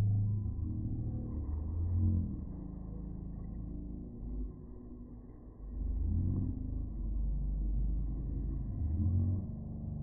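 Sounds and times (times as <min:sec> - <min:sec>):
slowed-down low drone: 0:00.0 - 0:10.0.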